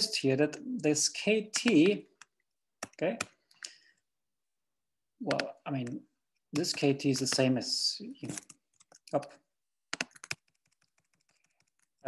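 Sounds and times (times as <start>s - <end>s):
keyboard keys clicking: 9.9s - 12.0s.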